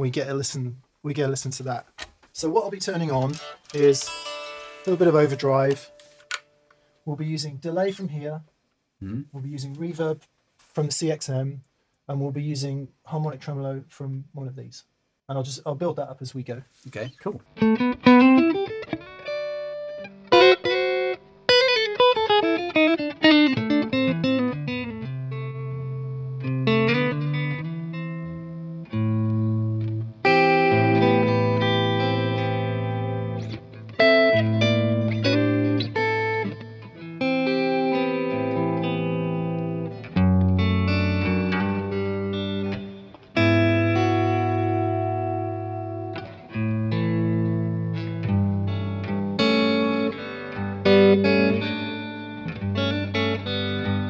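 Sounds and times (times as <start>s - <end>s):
overdriven electric guitar: 3.2s - 6.9s, 17.5s - 54.0s.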